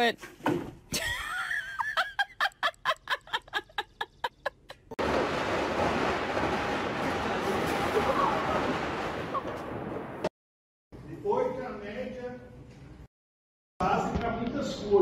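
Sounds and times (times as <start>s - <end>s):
person laughing rhythmically: 1.0s - 5.0s.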